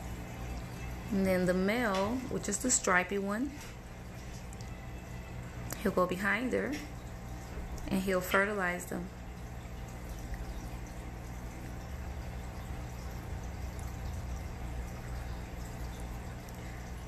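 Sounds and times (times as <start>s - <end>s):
aquarium equipment hum: 0.0s - 17.0s
aquarium water bubbling: 0.0s - 17.0s.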